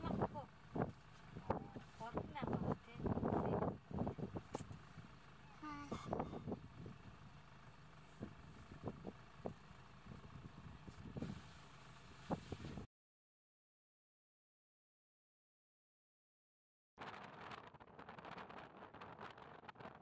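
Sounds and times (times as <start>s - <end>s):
low steady rumble: 0.0s - 12.9s.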